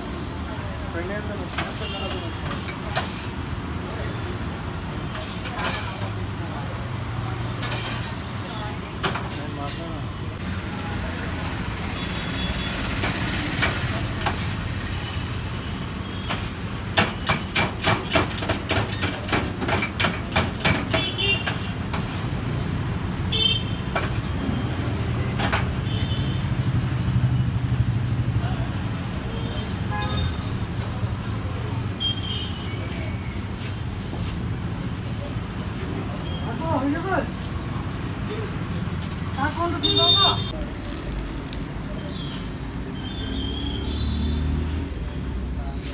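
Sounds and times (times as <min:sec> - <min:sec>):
traffic hum: 0:00.0 - 0:45.9
knife chopping on steel counter: 0:17.0 - 0:22.1.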